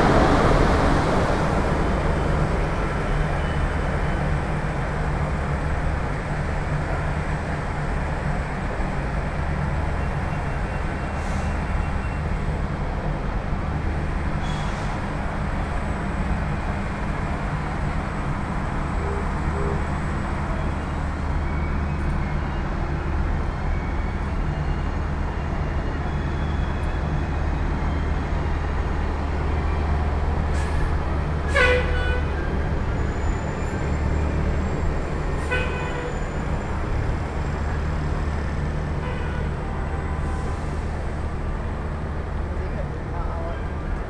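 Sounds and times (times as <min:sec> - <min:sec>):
road traffic drone: 0:00.0 - 0:44.0.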